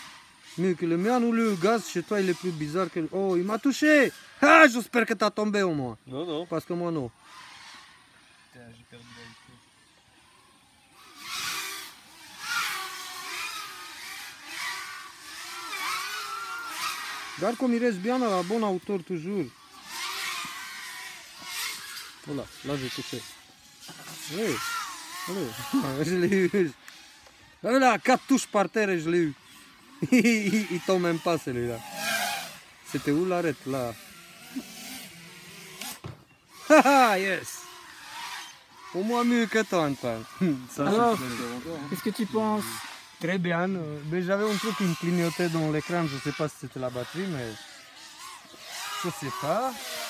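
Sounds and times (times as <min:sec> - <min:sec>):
quadcopter motors whining: 0:00.0 - 0:50.0.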